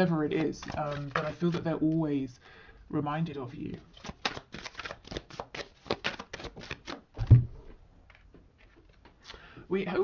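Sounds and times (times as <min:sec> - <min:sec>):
cards being shuffled: 0:00.2 - 0:02.0, 0:03.9 - 0:07.0.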